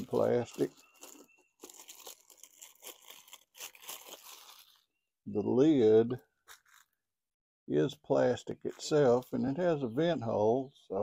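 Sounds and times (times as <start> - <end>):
plastic wrap crinkling: 0.0 - 5.0, 6.4 - 7.0.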